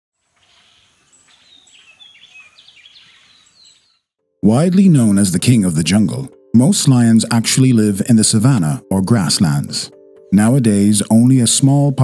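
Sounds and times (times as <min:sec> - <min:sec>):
soft outdoor hiss: 0:00.2 - 0:03.8
birds chirping and whistling: 0:00.4 - 0:04.1.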